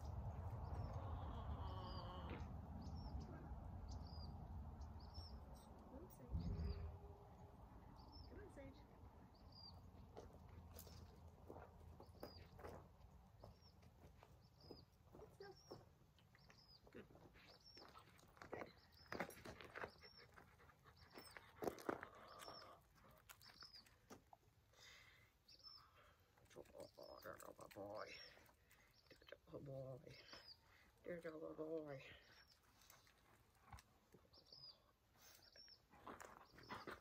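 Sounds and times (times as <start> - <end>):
small bird chirping: 13.4 - 24.2
dog panting: 19.5 - 22.2.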